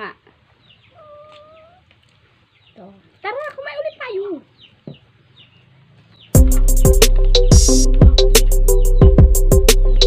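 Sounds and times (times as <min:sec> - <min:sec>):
faint animal call: 0:00.8 - 0:02.0.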